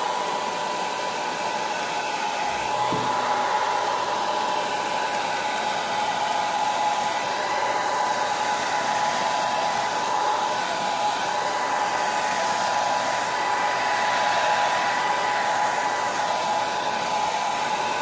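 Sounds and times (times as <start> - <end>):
hair dryer running: 0.0 - 18.0.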